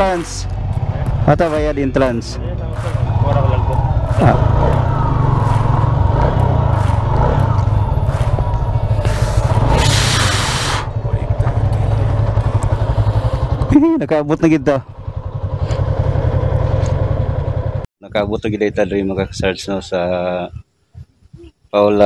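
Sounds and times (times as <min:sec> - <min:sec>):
motorcycle engine running: 0:00.0 - 0:17.9
hiss: 0:09.3 - 0:10.9
wind rumble on microphone: 0:18.0 - 0:21.7.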